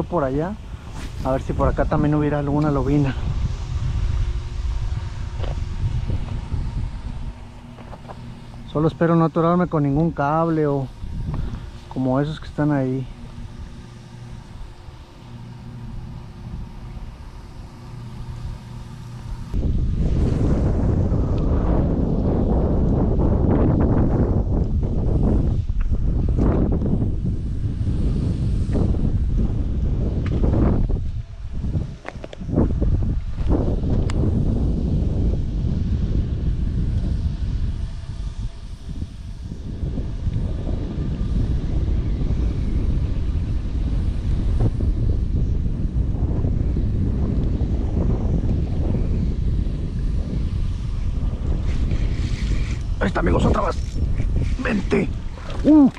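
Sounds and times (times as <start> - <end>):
steady low hum: 0.0 - 55.9
wind buffeting microphone: 0.0 - 55.9.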